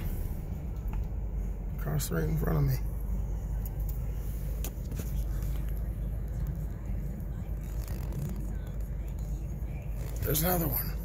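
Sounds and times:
car running rumble from inside: 0.0s - 11.0s.

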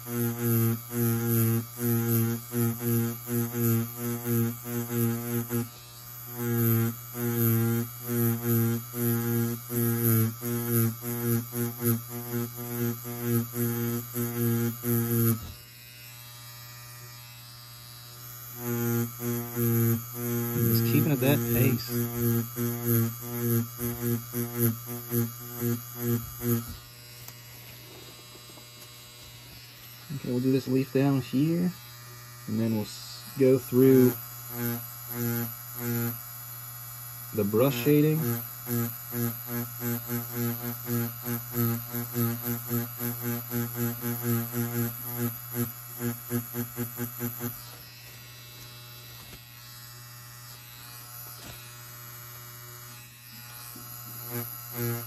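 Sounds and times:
tattoo machine buzzing: 0.0s - 55.0s.

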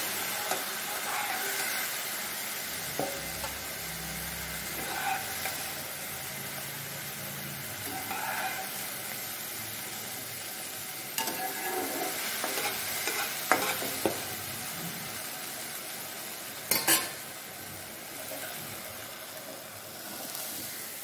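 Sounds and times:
mushrooms sizzling in a pan: 0.0s - 21.0s
spatula scraping a pan: 0.1s - 2.0s, 4.6s - 5.9s, 7.8s - 8.8s, 11.2s - 14.2s, 16.7s - 17.2s.

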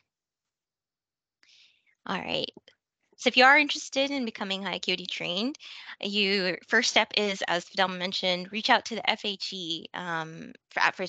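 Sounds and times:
person speaking: 2.1s - 2.5s.

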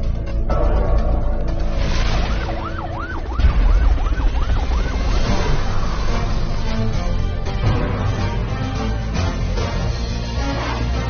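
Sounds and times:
emergency siren wailing: 1.7s - 7.0s.

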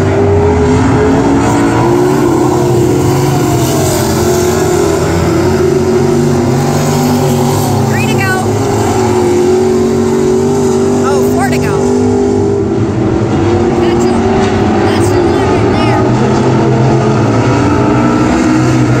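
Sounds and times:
stock car engines racing: 0.0s - 19.0s.

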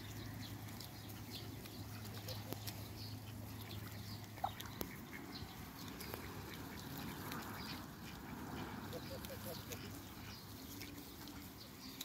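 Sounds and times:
ducks calling softly: 0.0s - 12.0s.

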